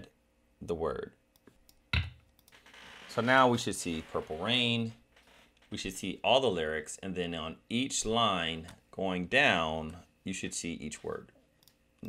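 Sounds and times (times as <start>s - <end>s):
computer mouse clicks: 11.6s - 11.8s.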